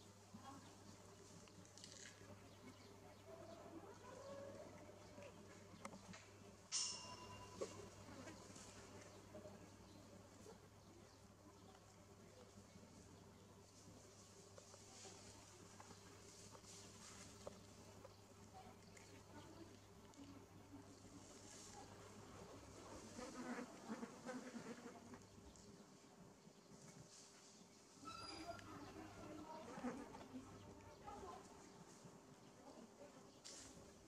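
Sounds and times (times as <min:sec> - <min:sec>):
outdoor background hiss: 0:00.0 - 0:34.0.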